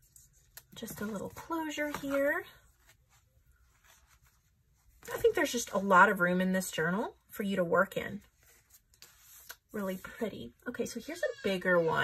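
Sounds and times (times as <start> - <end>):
ribbon rustling: 0.0 - 5.8, 8.2 - 10.3.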